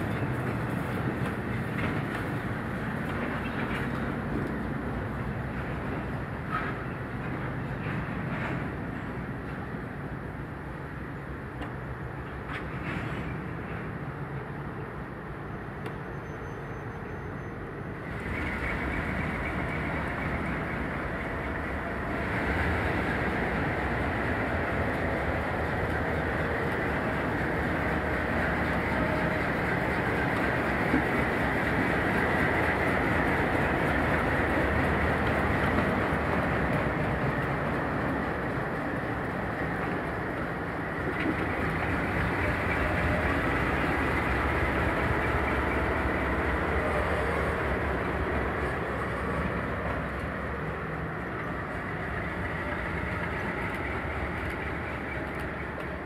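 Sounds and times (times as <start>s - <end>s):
diesel locomotive engines running: 0.0s - 56.0s
train wheels on rails: 0.0s - 56.0s.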